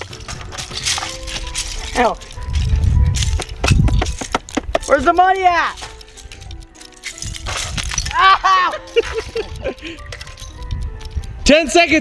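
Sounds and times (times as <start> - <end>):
plastic bricks clattering: 0.0 - 9.4
background music: 0.0 - 12.0.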